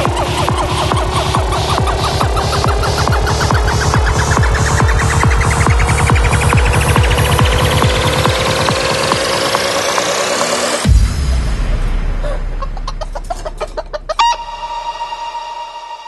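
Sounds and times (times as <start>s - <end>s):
deep bass tone: 0.0s - 9.9s, 10.8s - 16.0s
electronic dance music kick beat: 0.0s - 15.6s
rising synth sweep: 0.0s - 16.0s
sampled chicken clucks: 12.2s - 15.1s.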